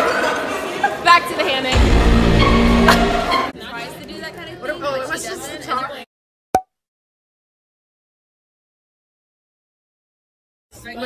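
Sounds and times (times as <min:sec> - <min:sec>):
crowd chattering: 0:00.0 - 0:01.8, 0:02.4 - 0:06.1
loud music: 0:01.8 - 0:03.5.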